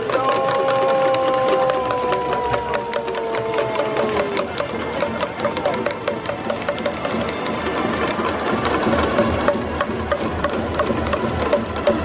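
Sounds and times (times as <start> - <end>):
crowd cheering: 0.0 - 12.0
noisemakers clacking: 0.0 - 12.0.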